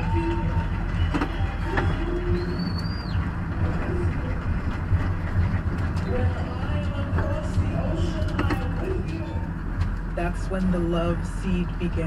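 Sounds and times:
faint whistle-like tones: 0.0s - 4.4s
car engine and tyres rumbling: 0.0s - 12.0s.

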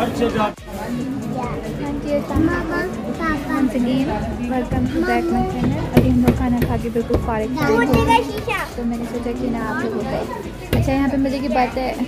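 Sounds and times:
children's voices: 1.1s - 6.0s, 7.5s - 8.9s
woman speaking: 3.7s - 8.0s, 8.7s - 10.2s, 10.8s - 12.0s.

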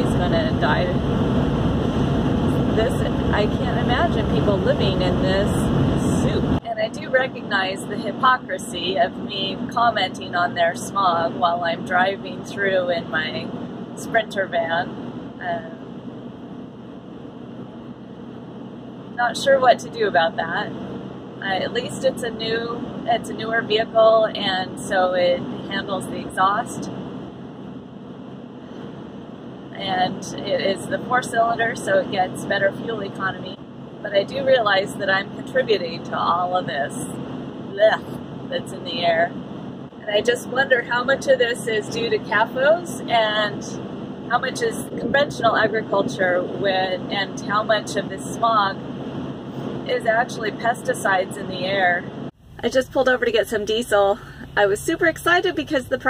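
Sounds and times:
tyres rumbling on road: 0.0s - 15.8s, 29.6s - 56.0s
diesel van engine running: 0.0s - 56.0s.

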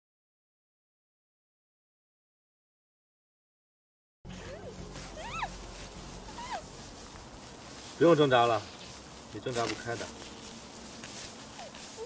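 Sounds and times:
muffled high-pitched cries: 4.3s - 6.9s, 11.4s - 12.0s.

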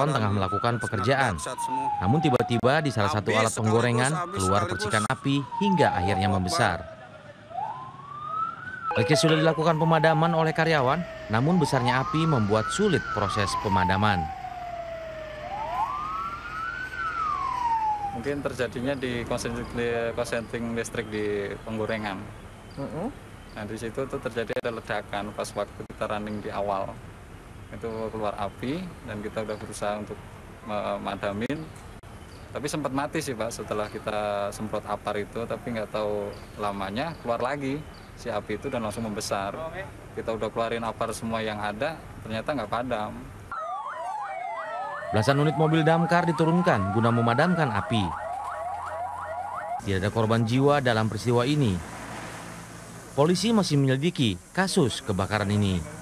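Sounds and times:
fire engine siren wailing: 0.0s - 19.7s, 43.5s - 51.8s.

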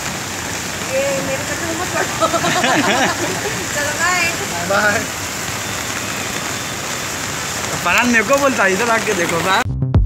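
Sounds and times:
steady rain falling: 0.0s - 9.6s.

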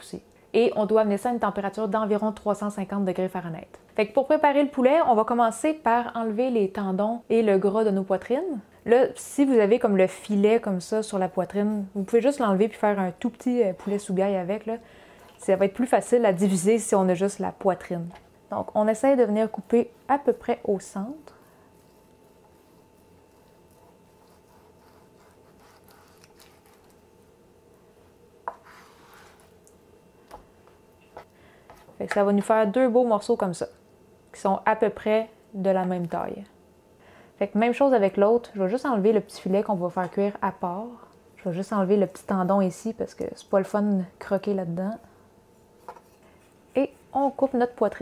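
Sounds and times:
soft handling of wet meat: 21.0s - 27.1s
knife slicing raw meat: 21.8s - 27.0s.

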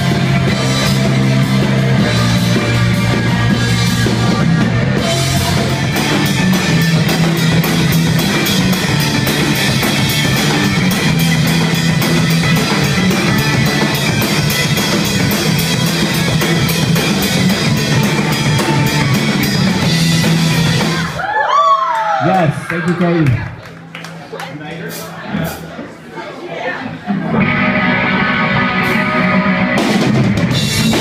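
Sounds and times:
drum kit fast beat: 0.0s - 21.2s, 28.7s - 31.0s
electric guitar: 0.0s - 21.2s, 27.1s - 31.0s.

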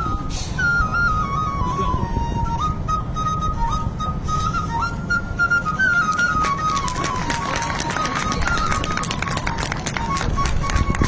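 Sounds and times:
flute playing slow melody: 0.0s - 11.0s.

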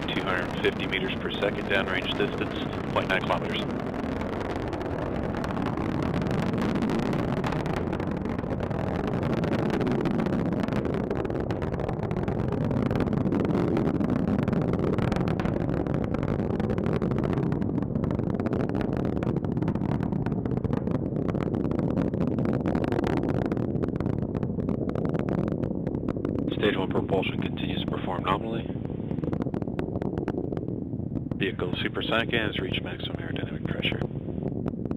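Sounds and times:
rocket engines crackling rumble: 0.0s - 34.9s.

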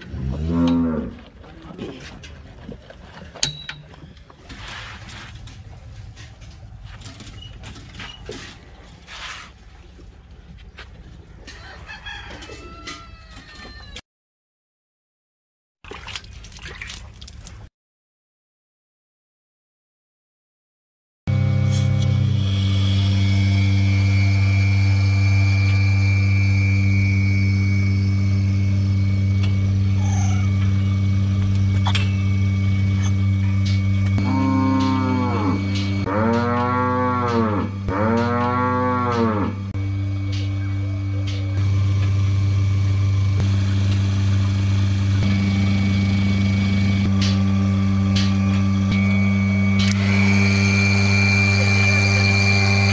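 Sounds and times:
cow mooing: 0.1s - 1.3s, 34.2s - 39.8s
rooster crowing: 11.5s - 14.0s
steady low hum: 21.3s - 52.9s.

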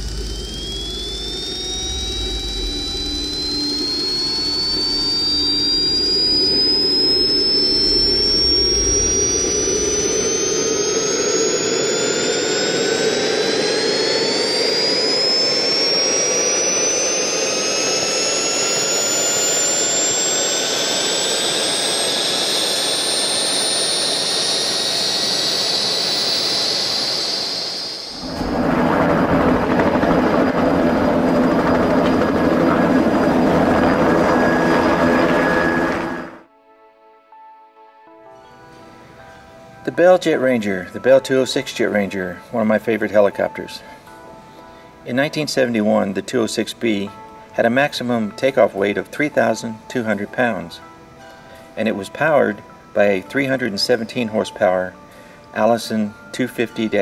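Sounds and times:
helicopter running: 0.0s - 36.5s
jet turbine whine rising: 0.0s - 36.5s, 38.6s - 57.0s.

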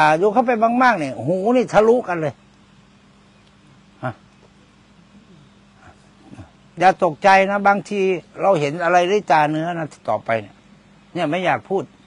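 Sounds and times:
man talking: 0.0s - 2.4s, 4.0s - 4.2s, 6.3s - 11.9s
steady low hum: 0.0s - 12.0s.

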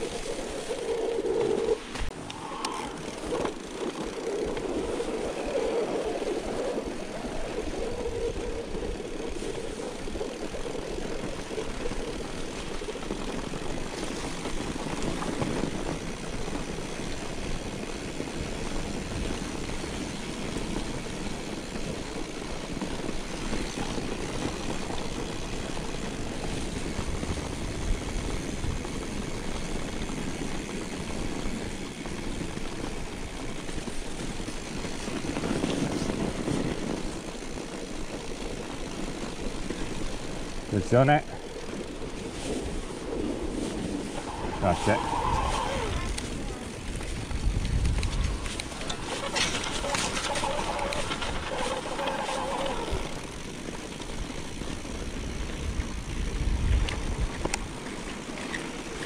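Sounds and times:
bike tyres rumbling on snow: 0.0s - 59.0s
wind on microphone: 40.8s - 53.3s, 55.1s - 58.5s.

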